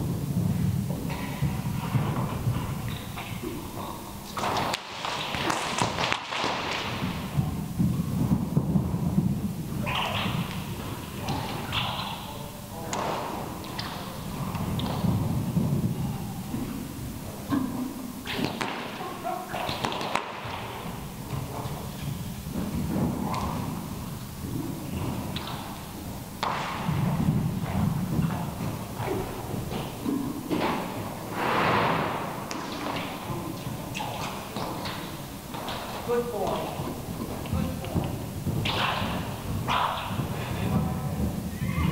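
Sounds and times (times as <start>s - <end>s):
horse hooves thudding on sand: 0.0s - 18.0s, 19.6s - 41.9s
faint voices: 9.7s - 18.0s, 33.0s - 41.9s.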